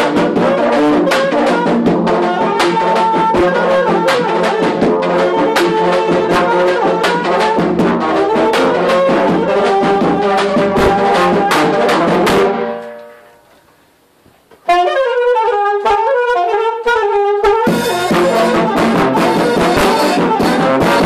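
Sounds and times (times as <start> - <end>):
brass band playing: 0.0 - 13.5, 14.7 - 21.0
bass drum and cymbal: 17.7 - 21.0.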